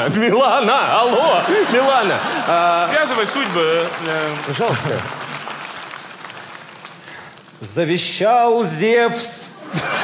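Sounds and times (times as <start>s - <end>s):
audience applauding: 1.0s - 7.9s.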